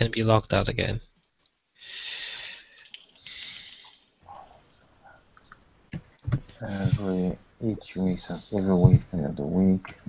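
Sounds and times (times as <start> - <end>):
breath hiss close to microphone: 1.8 - 4.6.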